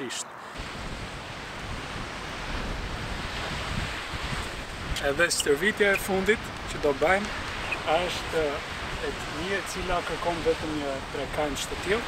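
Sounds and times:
sea surf: 0.0s - 12.0s
wind buffeting microphone: 0.5s - 12.0s.

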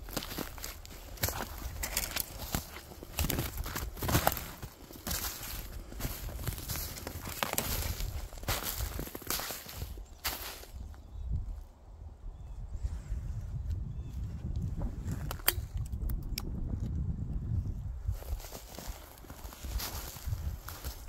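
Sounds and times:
footsteps crunching through snow: 0.0s - 11.0s, 18.1s - 21.0s
twigs snapping: 0.1s - 10.7s.

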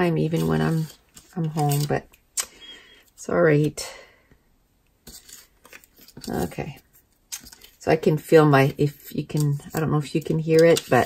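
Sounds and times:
paper and card rustling: 0.1s - 2.1s, 5.0s - 11.0s.

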